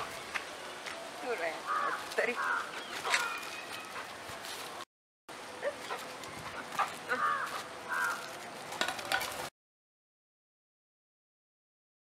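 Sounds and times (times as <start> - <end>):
outdoor background noise: 0.0 - 9.5.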